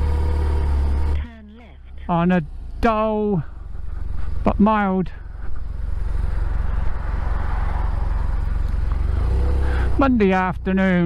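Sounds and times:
motorcycle engine rumbling: 0.0 - 11.0.

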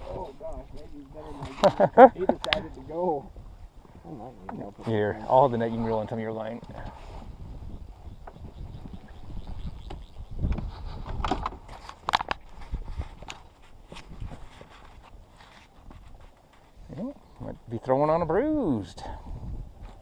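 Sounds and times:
wind rumble on microphone: 0.0 - 20.0
fishing gear knocks and clicks: 9.8 - 16.6.

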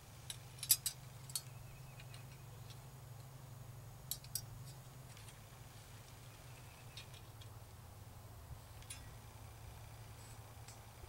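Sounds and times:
steady low hum: 0.0 - 11.0
wire grill frame clicking: 0.2 - 3.3, 4.0 - 5.4, 8.7 - 10.9.

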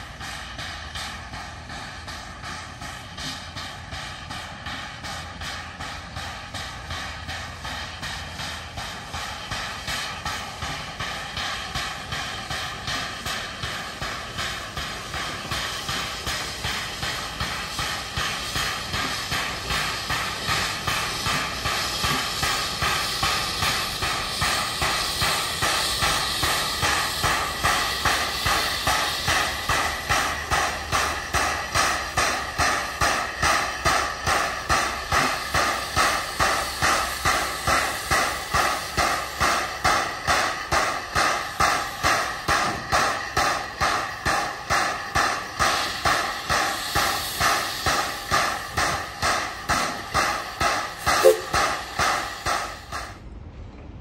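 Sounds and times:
steam hiss: 0.0 - 53.2
steam locomotive exhaust chuffing: 0.0 - 54.0.

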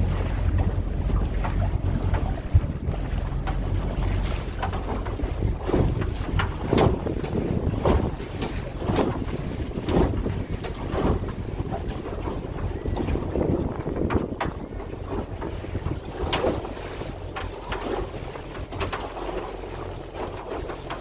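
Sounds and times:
hull slapping through waves: 0.0 - 21.0
motorboat engine rumble: 0.0 - 21.0
wind buffeting microphone: 0.0 - 21.0.

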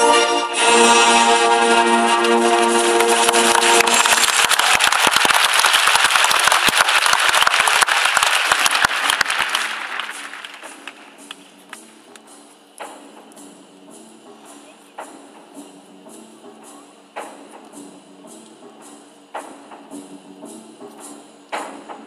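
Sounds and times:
sustained music chords: 0.0 - 4.4
audience applause: 2.2 - 11.1.

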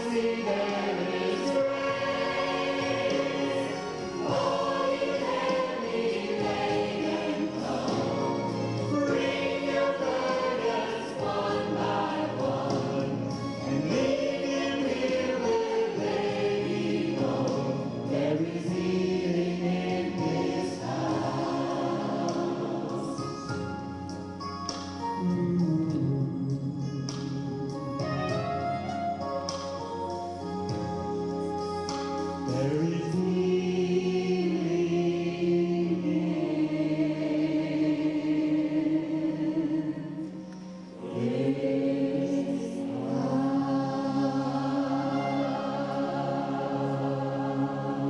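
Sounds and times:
gospel choir singing: 0.0 - 24.3, 30.2 - 48.0
man singing lead: 25.2 - 27.9, 32.5 - 34.8.

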